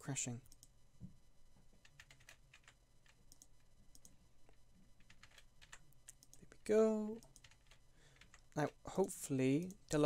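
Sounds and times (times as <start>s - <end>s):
low steady hum: 0.0s - 10.0s
keyboard and mouse clicks: 1.8s - 6.4s, 7.1s - 8.4s.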